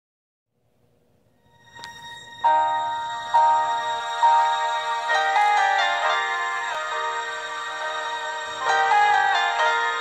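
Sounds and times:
keyboard chords: 1.6s - 10.0s.

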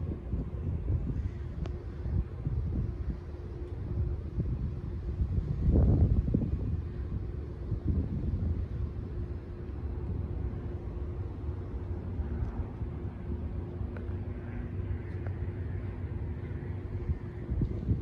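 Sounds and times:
faint steady hum: 0.0s - 18.0s
wind buffeting microphone: 0.0s - 18.0s.

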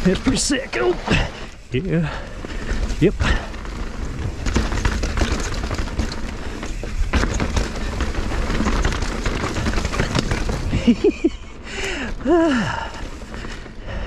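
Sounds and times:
bike rattling: 0.0s - 14.0s
bike tyres clattering over rocks: 0.0s - 14.0s
person laughing: 10.7s - 12.6s.

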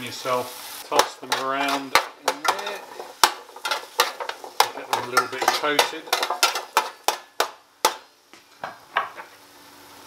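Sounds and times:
fries clattering in metal tin: 0.8s - 8.1s.

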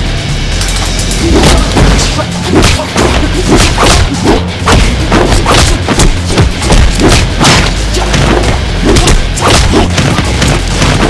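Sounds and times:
loud music with deep bass: 0.0s - 11.0s.

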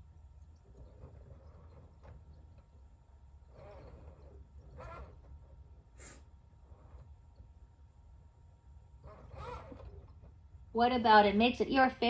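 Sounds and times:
steady low hum: 0.0s - 12.0s
person exhaling softly: 6.0s - 6.3s.

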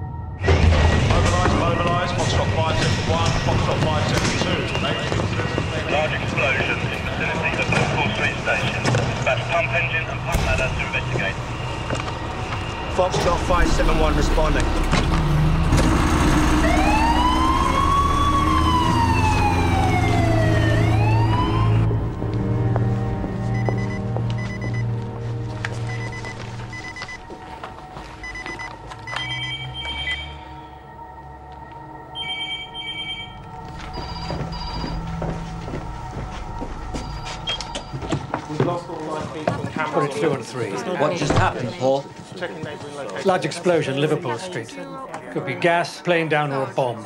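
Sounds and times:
steady low drone: 0.0s - 39.2s
loud low rumble: 10.2s - 18.0s
emergency siren wailing: 10.9s - 39.2s
short electronic beeps: 28.2s - 30.7s, 32.2s - 35.0s.

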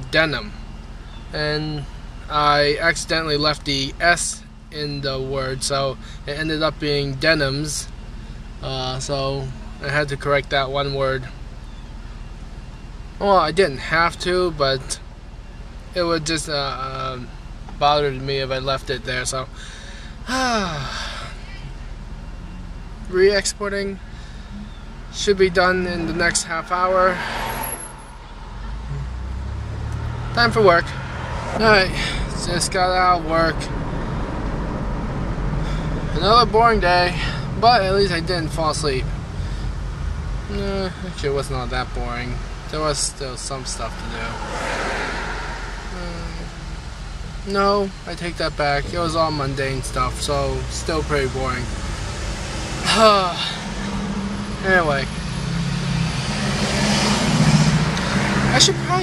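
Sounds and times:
car engine hum: 0.0s - 59.0s
road noise inside car: 0.0s - 59.0s.

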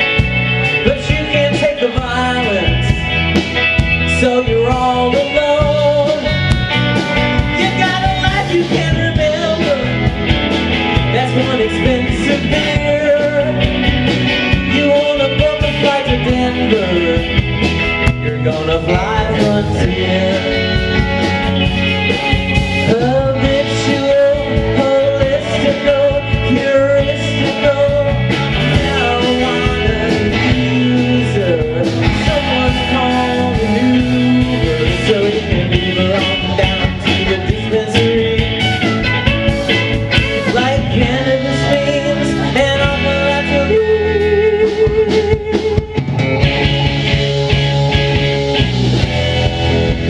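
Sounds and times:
drums keeping a steady beat: 0.0s - 50.0s
live rock band playing: 0.0s - 50.0s
sliding electric guitar notes: 0.0s - 50.0s.

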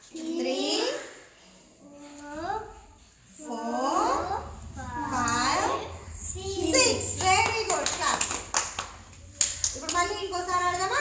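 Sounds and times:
children clapping hands: 7.7s - 10.0s.

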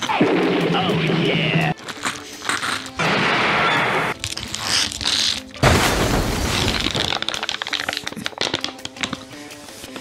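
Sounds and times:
foil pouch crinkling: 1.8s - 3.0s, 4.2s - 5.6s, 6.4s - 9.4s.

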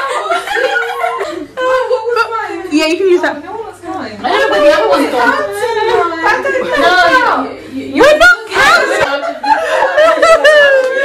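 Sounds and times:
women chuckling: 0.0s - 1.9s, 9.0s - 11.0s
women talking: 0.0s - 11.0s.

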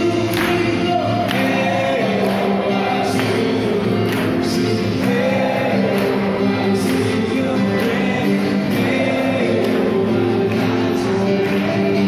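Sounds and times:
acoustic guitar: 0.0s - 12.0s
group of men singing: 0.0s - 12.0s.

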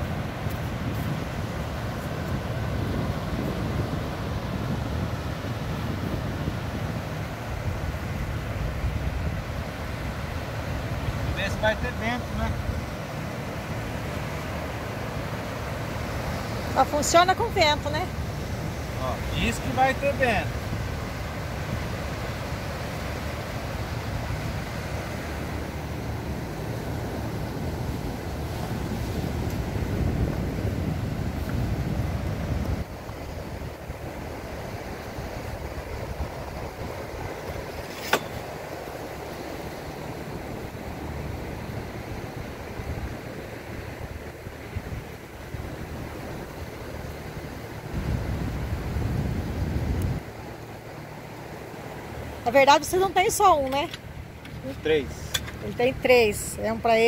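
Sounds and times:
surf washing on beach: 0.0s - 57.0s
wind rumbling on microphone: 0.0s - 57.0s.

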